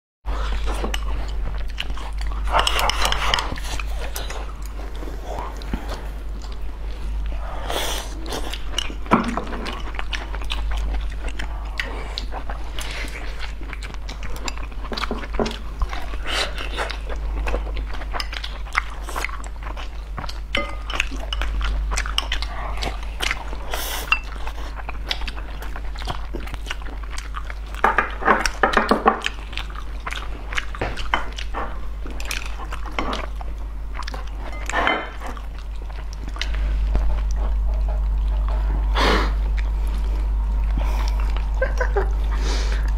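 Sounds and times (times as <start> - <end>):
chewing and smacking mouth noises: 0.3 - 42.9
steady low hum: 0.3 - 42.9.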